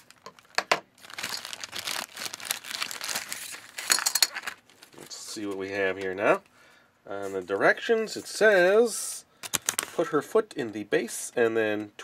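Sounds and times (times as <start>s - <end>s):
plastic bag crinkling: 0.0s - 5.3s.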